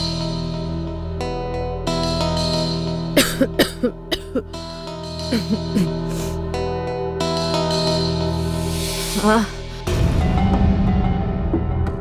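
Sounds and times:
background music: 0.0s - 12.0s
man coughing: 3.2s - 4.6s, 5.3s - 6.4s.

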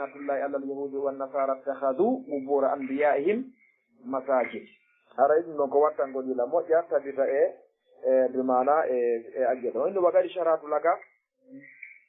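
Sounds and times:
man lecturing: 0.0s - 11.2s.

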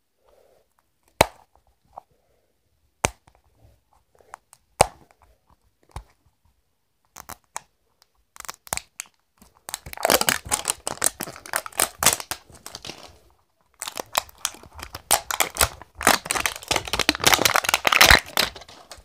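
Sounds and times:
wrapper crinkling and tearing: 9.7s - 19.0s.

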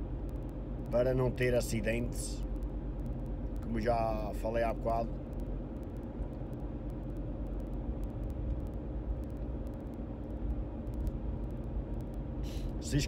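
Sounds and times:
car interior engine and tyre rumble: 0.0s - 13.0s.

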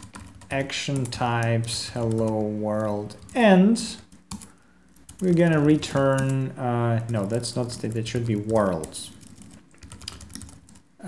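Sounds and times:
computer keyboard typing: 0.0s - 10.9s.

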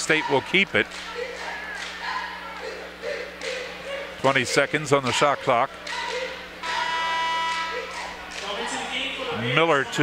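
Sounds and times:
arena horn buzzing: 5.9s - 8.1s.

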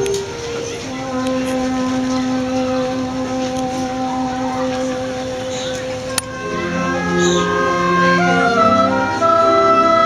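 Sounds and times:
background noise: 0.0s - 10.0s
held low note: 0.0s - 10.0s.

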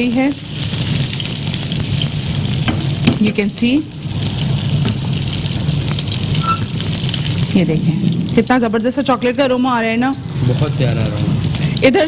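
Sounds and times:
pot simmering with sizzling hiss: 0.0s - 12.0s.

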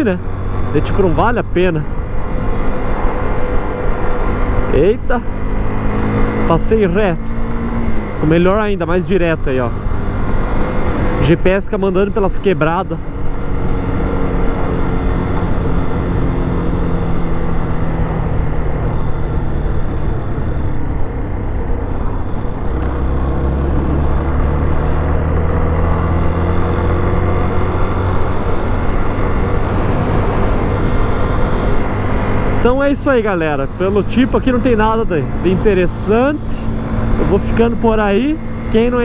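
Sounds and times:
motorcycle engine running: 0.0s - 39.0s.

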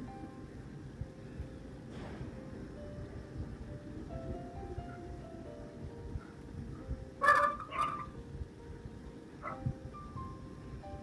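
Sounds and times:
faint background music tones: 0.0s - 11.0s
bird harsh calls: 7.2s - 8.2s.

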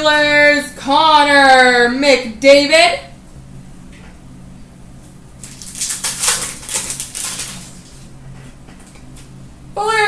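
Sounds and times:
cards being handled: 5.4s - 8.0s
foil wrapper crinkling and tearing: 5.4s - 8.1s.

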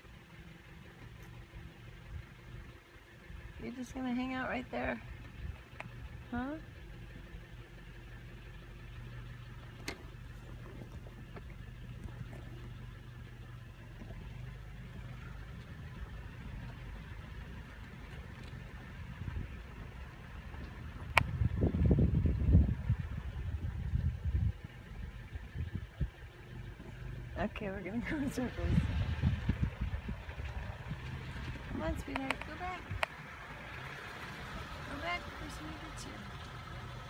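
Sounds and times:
car engine idling: 0.0s - 37.0s
car rumbling while moving: 0.0s - 37.0s.

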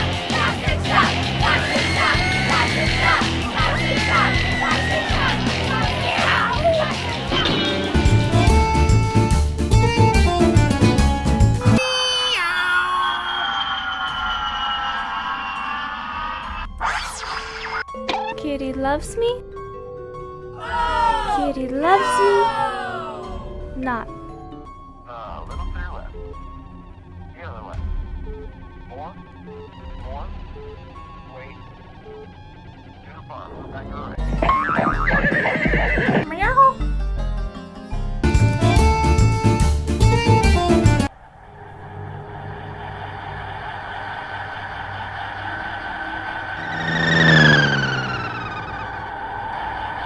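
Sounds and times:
background music: 0.0s - 41.4s
horse whinnying: 1.5s - 5.8s, 35.1s - 36.3s
electronic chord drifting lower: 41.1s - 50.0s.

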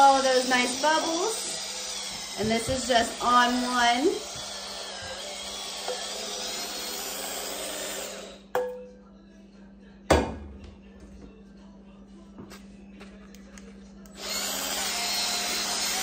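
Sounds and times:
electric scrubber whirring on pan: 0.0s - 8.4s, 14.2s - 16.0s.

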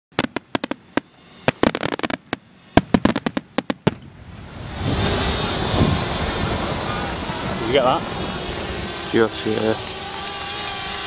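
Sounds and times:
firework crackle: 0.1s - 11.0s
steady rushing noise: 0.1s - 11.0s.

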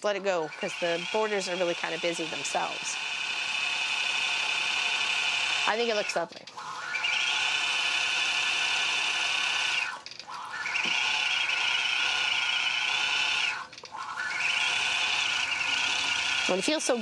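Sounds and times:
quilting machine whine: 0.0s - 17.0s.

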